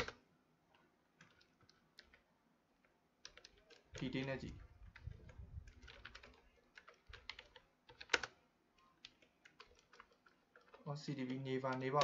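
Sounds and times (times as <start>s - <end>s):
typing on computer keyboard: 0.0s - 0.2s, 1.2s - 2.3s, 3.2s - 12.0s.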